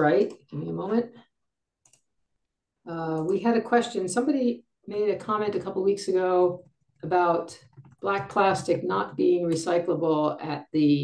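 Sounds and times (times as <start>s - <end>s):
person speaking: 0.0s - 1.2s, 2.9s - 11.0s.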